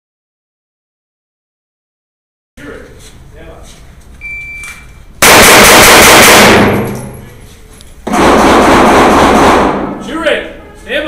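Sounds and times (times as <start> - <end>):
rapid pistol fire: 5.2 - 7.2, 8.0 - 10.0.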